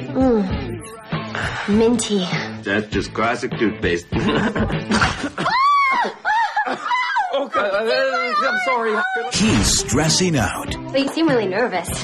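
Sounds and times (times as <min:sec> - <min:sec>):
woman laughing: 0:04.2 - 0:09.3.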